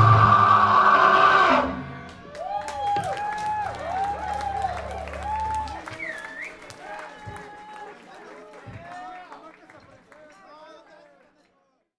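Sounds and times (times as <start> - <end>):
people clapping: 2.1 - 11.9
crowd whooping and cheering: 2.2 - 9.3.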